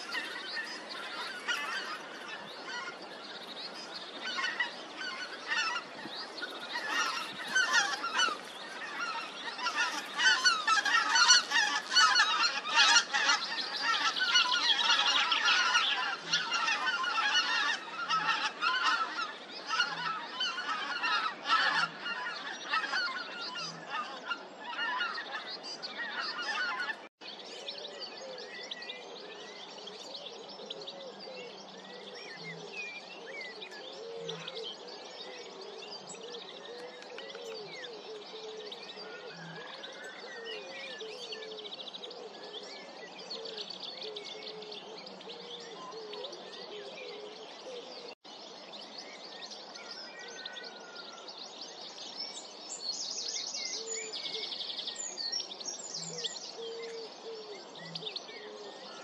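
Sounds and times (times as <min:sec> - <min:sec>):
geese honking: 0:00.0 - 0:03.0, 0:04.2 - 0:27.1
scattered bird calls: 0:00.0 - 0:59.0.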